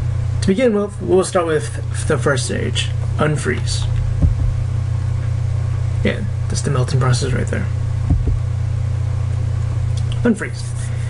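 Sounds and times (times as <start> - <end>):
loud low hum: 0.0 - 11.0
low bump: 4.0 - 4.8, 8.0 - 8.6.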